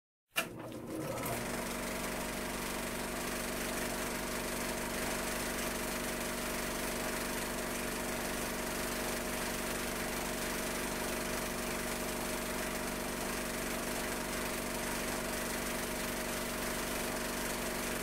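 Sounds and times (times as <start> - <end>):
projector click: 0.4 - 0.8
film projector whirring and clattering: 0.4 - 18.0.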